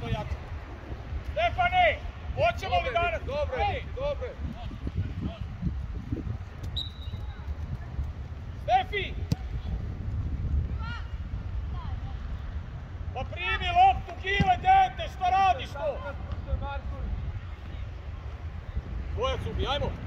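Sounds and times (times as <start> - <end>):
foot kicking football: 9.1 - 10.8.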